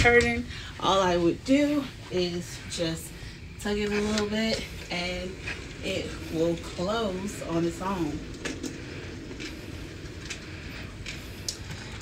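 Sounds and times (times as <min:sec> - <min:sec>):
motorized curtain hum: 0:00.0 - 0:12.0.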